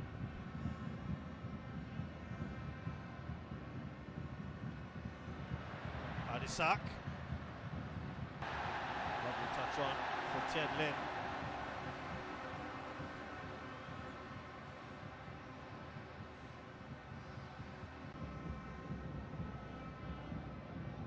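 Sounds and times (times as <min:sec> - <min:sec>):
stadium crowd din: 0:05.6 - 0:07.0, 0:08.4 - 0:15.2
crowd roar: 0:08.4 - 0:12.2.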